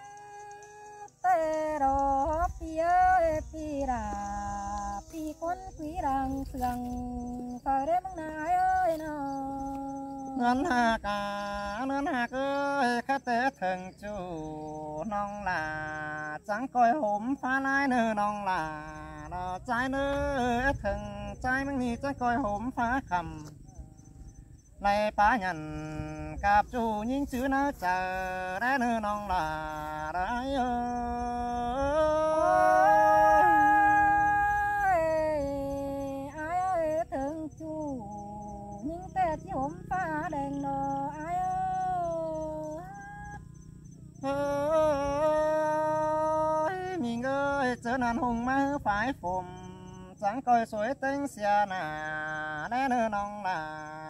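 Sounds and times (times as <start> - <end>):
person singing a long note: 0.0 - 12.9, 24.9 - 43.4, 44.2 - 50.4.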